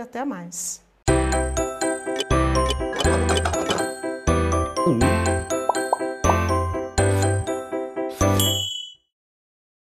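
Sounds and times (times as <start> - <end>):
bright chime ringing: 8.3 - 9.0.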